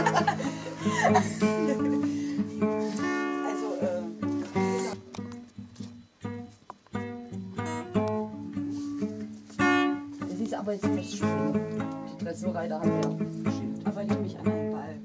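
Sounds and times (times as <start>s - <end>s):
acoustic guitar playing: 0.0s - 15.0s.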